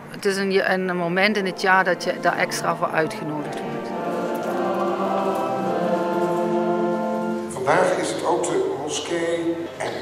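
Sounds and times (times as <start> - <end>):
congregation singing a hymn: 1.1 - 9.6.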